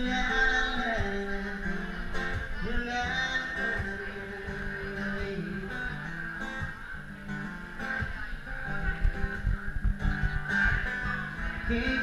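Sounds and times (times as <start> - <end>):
acoustic guitar strumming: 0.0 - 12.0
low thumping beat: 8.8 - 11.7.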